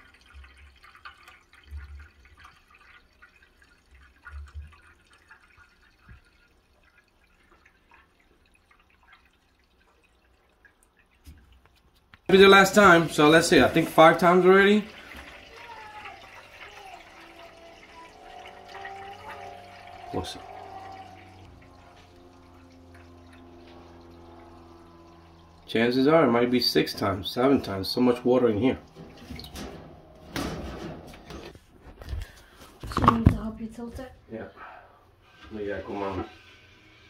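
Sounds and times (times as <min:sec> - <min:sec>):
water pouring into a pan: 0:00.0 - 0:31.6, 0:35.4 - 0:37.0.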